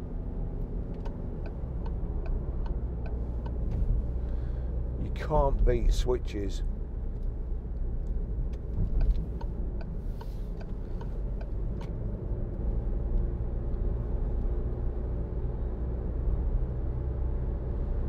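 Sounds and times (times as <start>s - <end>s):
faint engine hum: 0.0s - 18.0s.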